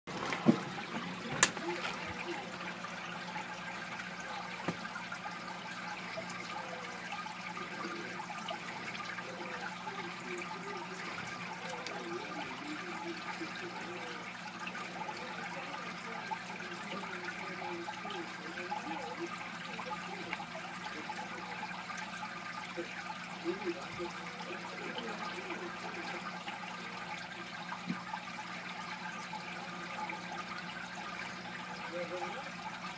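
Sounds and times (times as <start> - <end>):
water trickling and bubbling: 0.1 - 32.9.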